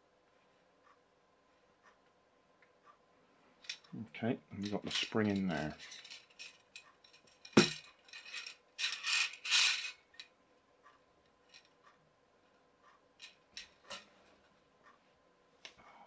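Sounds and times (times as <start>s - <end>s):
metal poles knocking: 7.5s - 7.9s
metal scraping: 7.6s - 10.0s.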